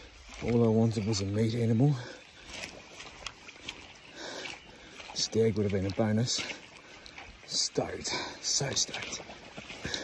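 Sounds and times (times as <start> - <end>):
man breathing close to microphone: 9.8 - 10.0.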